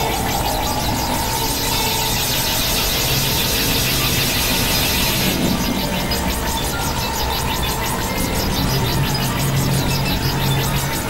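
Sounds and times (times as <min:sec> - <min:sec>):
synthesizer drone: 0:00.0 - 0:11.0.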